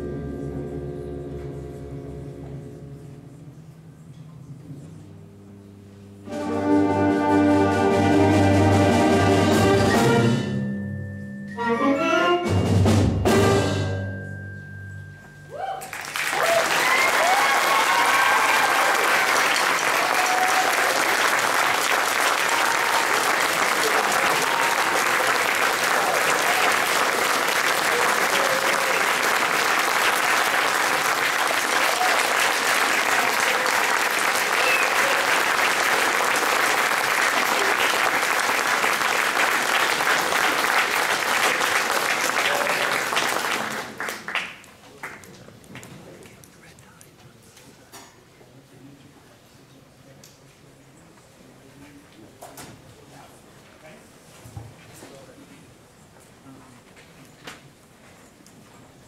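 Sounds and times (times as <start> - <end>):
people cheering: 15.5 - 45.2
audience applauding: 15.8 - 46.4.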